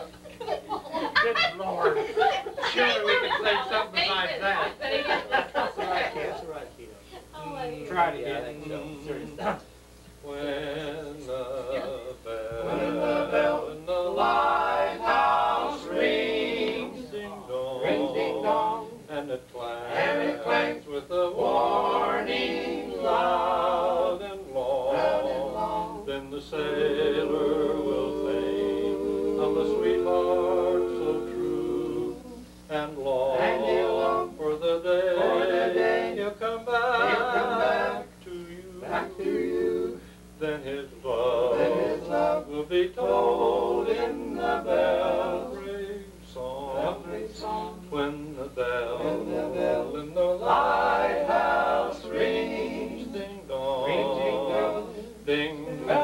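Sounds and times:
male quartet singing in harmony: 8.2s - 9.6s, 10.2s - 56.0s.

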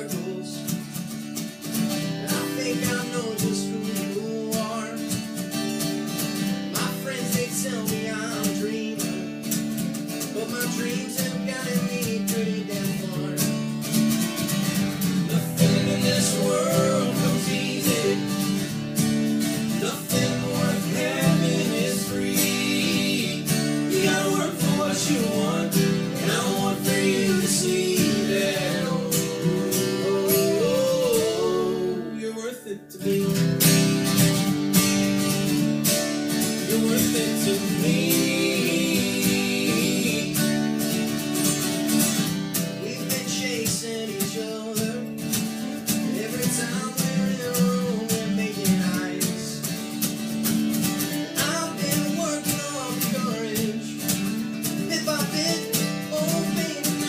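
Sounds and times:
men singing country-pop song: 0.0s - 0.8s, 2.2s - 5.3s, 6.7s - 9.5s, 10.2s - 13.6s, 15.0s - 33.8s, 36.4s - 41.2s, 42.8s - 49.7s, 51.3s - 57.0s
acoustic guitars strumming: 0.0s - 57.0s.

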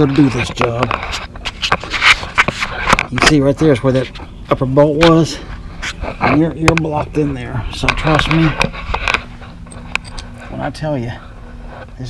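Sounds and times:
rustling and scraping: 0.0s - 12.0s.

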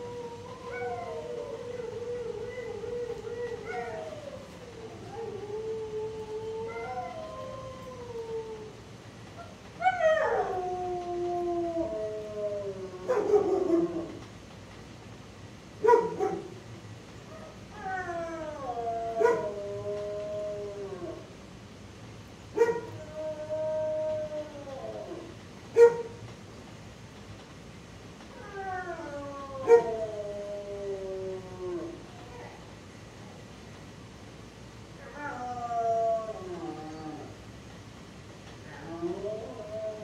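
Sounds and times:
dogs howling: 0.0s - 14.2s, 17.3s - 21.4s, 22.5s - 26.2s, 28.3s - 32.6s, 34.9s - 37.4s, 38.6s - 40.0s
dog barking: 15.8s - 16.5s, 22.6s - 22.9s, 25.8s - 26.1s.

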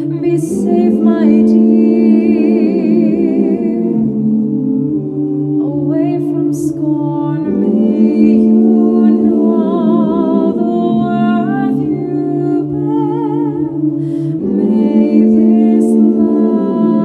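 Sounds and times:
woman singing wordless notes: 0.0s - 4.0s, 5.6s - 17.0s.

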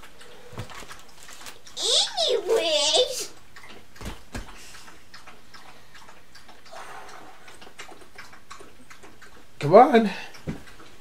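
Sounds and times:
faint ticking and clicking: 0.0s - 11.0s
low room hiss: 0.0s - 11.0s.

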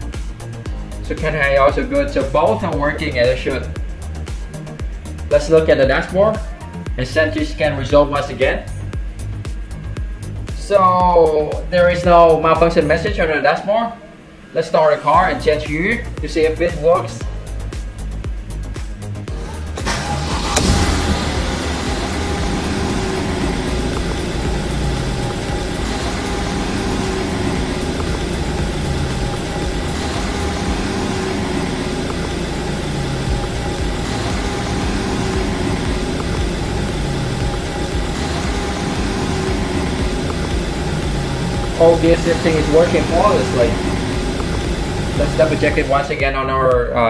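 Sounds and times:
background music: 0.0s - 47.0s
car engine starting and idling: 0.0s - 47.0s.

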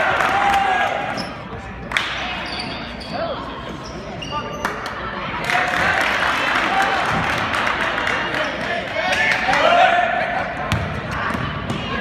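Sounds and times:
voices echoing in hall: 0.0s - 12.0s.

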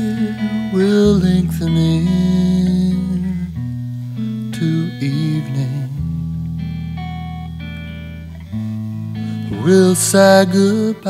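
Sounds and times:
jazz guitar chords: 0.0s - 11.0s.

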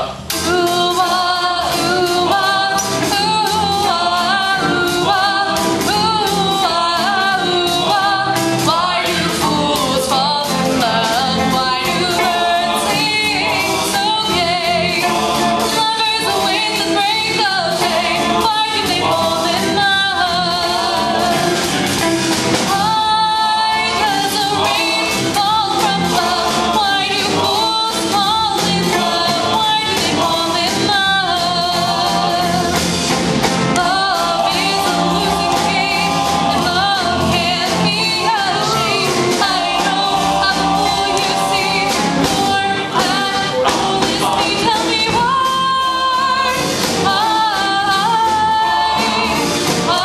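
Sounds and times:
female lead vocals: 0.0s - 21.7s, 22.7s - 32.8s, 33.7s - 50.0s
drums: 0.0s - 50.0s
several voices singing: 0.0s - 50.0s
upright bass: 0.0s - 50.0s
electric guitar: 1.8s - 50.0s
male backing vocals: 33.8s - 45.0s.

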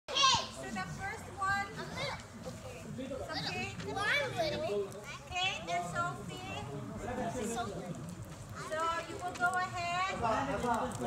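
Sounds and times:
children chattering: 0.1s - 11.0s.

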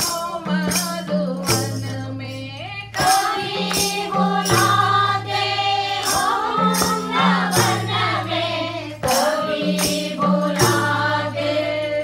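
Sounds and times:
women singing together: 0.0s - 12.0s
hand claps: 3.0s - 5.0s, 6.0s - 8.1s, 9.0s - 11.0s.

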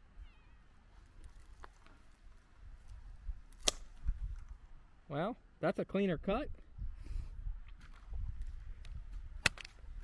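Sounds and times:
pruning snips cutting branch: 3.5s - 4.1s.

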